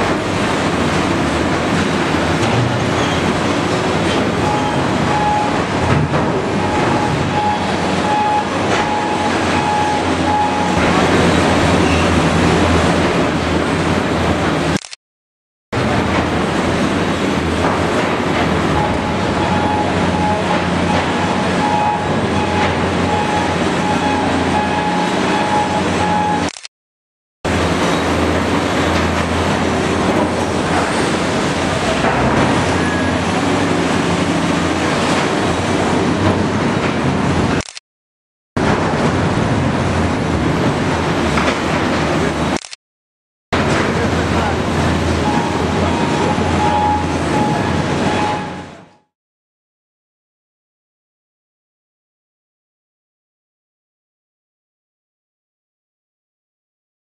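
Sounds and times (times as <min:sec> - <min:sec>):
heavy diesel machinery running: 0:00.0 - 0:15.0, 0:15.8 - 0:26.7, 0:27.5 - 0:37.8, 0:38.6 - 0:42.8, 0:43.6 - 0:49.1.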